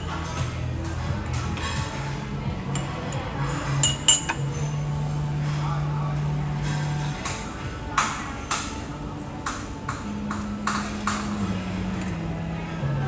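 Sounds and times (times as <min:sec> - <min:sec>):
music with low held notes: 0:00.0 - 0:13.0.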